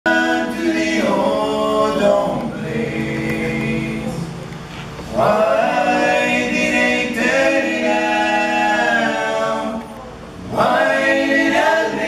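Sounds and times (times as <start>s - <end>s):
voices singing in harmony: 0.1s - 12.0s.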